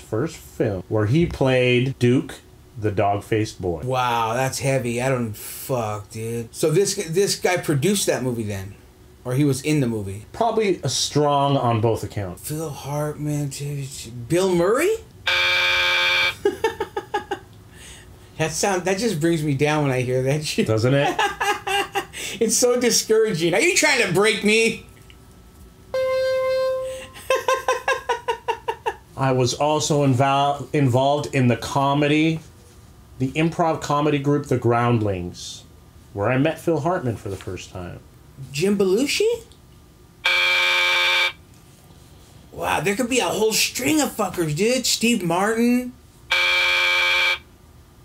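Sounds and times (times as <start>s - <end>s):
game show buzzer: 15.3s - 16.5s, 25.9s - 27.3s, 40.2s - 41.4s, 46.3s - 47.5s
man laughing: 16.3s - 17.5s, 20.5s - 22.5s, 26.9s - 29.2s.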